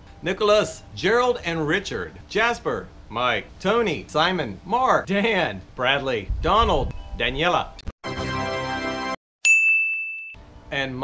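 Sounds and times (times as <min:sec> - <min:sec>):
bright ringing ding: 0:09.4 - 0:10.5.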